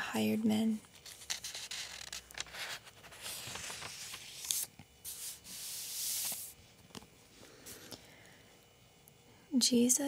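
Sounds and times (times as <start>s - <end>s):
paper pages rustling: 1.0s - 7.1s.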